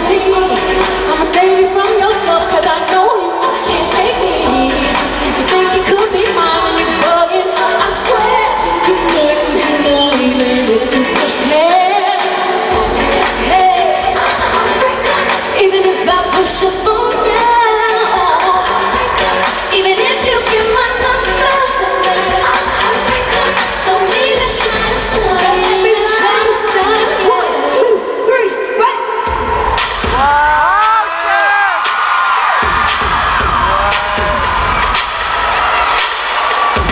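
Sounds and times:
amplified music: 0:00.0 - 0:28.3, 0:29.2 - 0:36.9
women singing into microphones: 0:00.0 - 0:29.0.

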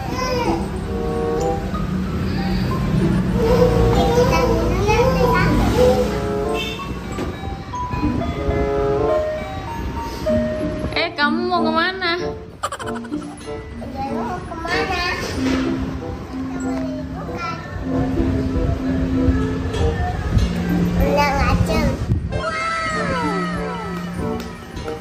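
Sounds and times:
children playing: 0:00.0 - 0:10.1, 0:12.7 - 0:25.0
young children's voices: 0:03.4 - 0:06.2, 0:20.9 - 0:24.0
child making wavering sound: 0:12.6 - 0:13.4.

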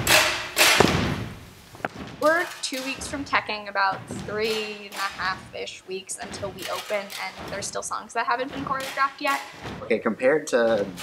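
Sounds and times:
heavy stamping on stage floor: 0:00.0 - 0:02.4.

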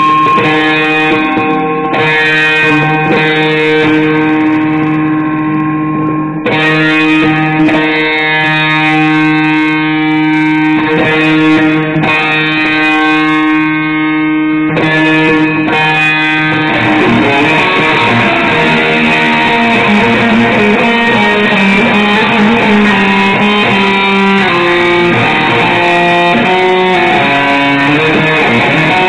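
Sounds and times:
electric guitar chords: 0:00.0 - 0:29.0.

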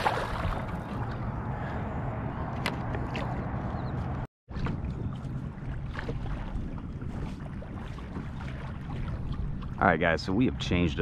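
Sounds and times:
water lapping against kayak hull: 0:04.5 - 0:10.0.

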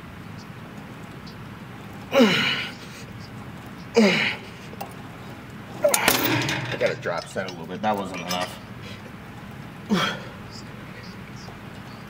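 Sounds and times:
heavy breathing: 0:02.1 - 0:03.2, 0:08.8 - 0:09.1, 0:09.9 - 0:10.7
weight stack metal clank: 0:05.8 - 0:08.6.

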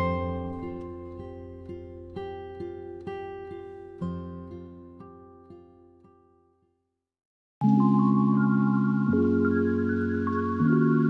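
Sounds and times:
plucked acoustic guitar: 0:00.0 - 0:06.5.

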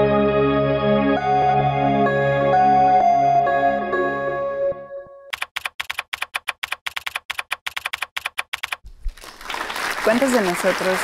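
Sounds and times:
fast typing clicks: 0:05.3 - 0:08.8
applause: 0:09.0 - 0:11.0.

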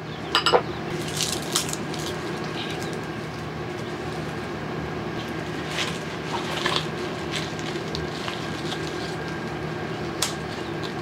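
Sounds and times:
steady low hum: 0:00.0 - 0:11.0
corn husks tearing: 0:01.0 - 0:03.1, 0:05.3 - 0:11.0.

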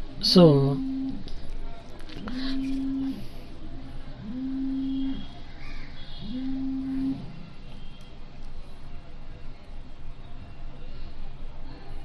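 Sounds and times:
low steady buzz pulses: 0:00.0 - 0:01.3, 0:02.2 - 0:05.4, 0:06.2 - 0:07.8.

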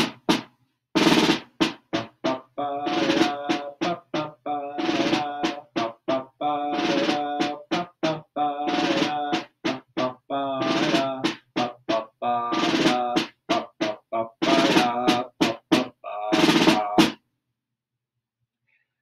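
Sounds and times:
damped snare drum rolls: 0:00.0 - 0:17.2.

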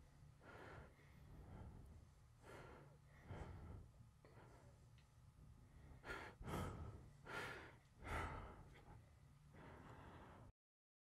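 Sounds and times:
person breathing heavily: 0:00.4 - 0:04.8, 0:05.7 - 0:10.5.

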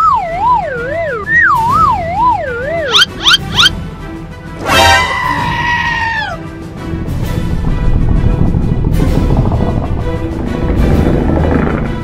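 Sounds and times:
background music: 0:00.0 - 0:12.0
cartoon monster scream: 0:04.7 - 0:06.4.

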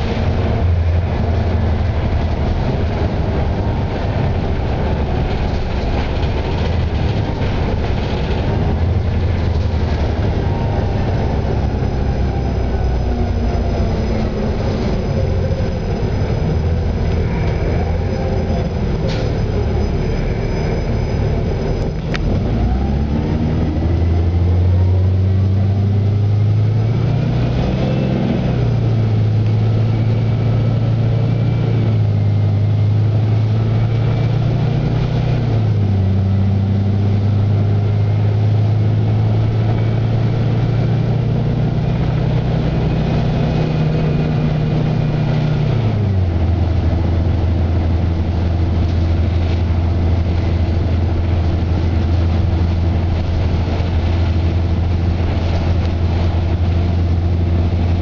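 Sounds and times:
bus engine drone: 0:00.0 - 0:58.0.

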